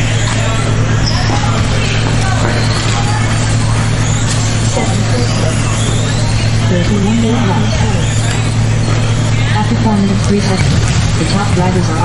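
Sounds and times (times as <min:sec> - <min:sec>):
loud steady hum: 0:00.0 - 0:12.0
small electric motors whining: 0:00.1 - 0:09.6.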